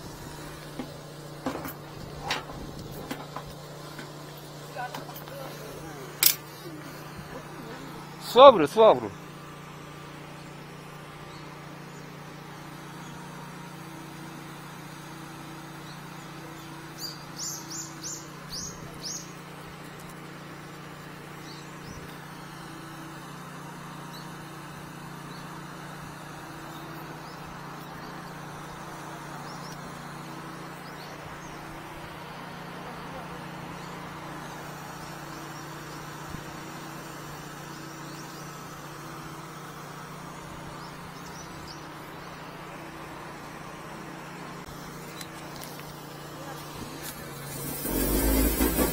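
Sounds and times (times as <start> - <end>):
low engine hum: 0.0 - 48.9.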